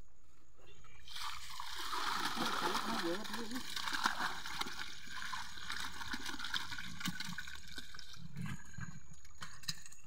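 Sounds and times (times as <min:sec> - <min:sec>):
water splashing and sloshing: 0:01.0 - 0:10.0.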